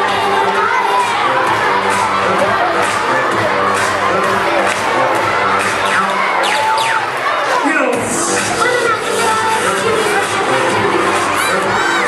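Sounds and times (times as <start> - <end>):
children shouting and cheering: 0.0 - 12.0
dance-pop music: 0.0 - 12.0.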